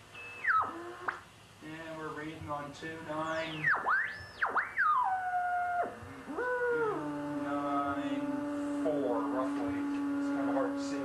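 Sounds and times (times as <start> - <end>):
shortwave receiver whistling: 0.0 - 1.3, 3.1 - 11.0.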